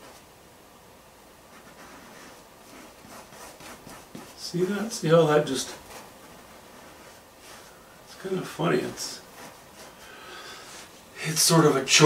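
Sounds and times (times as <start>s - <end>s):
paintbrush swishing on canvas: 1.5s - 7.8s.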